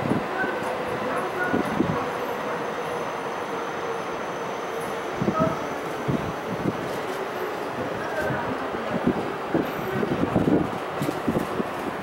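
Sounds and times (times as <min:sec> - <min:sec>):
train cars rolling: 0:00.0 - 0:12.0.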